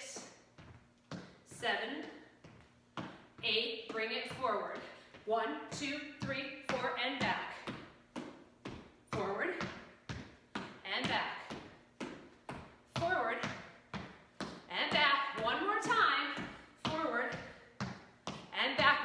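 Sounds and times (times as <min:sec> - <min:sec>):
sneaker footsteps on hardwood floor: 0:00.1 - 0:19.0
woman's voice: 0:01.5 - 0:02.2, 0:03.4 - 0:07.7, 0:09.1 - 0:09.8, 0:10.8 - 0:11.6, 0:13.0 - 0:13.6, 0:14.7 - 0:17.6, 0:18.5 - 0:19.0.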